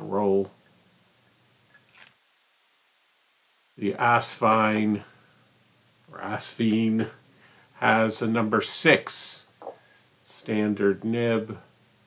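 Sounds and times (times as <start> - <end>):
faint high noise: 0.0 - 12.0.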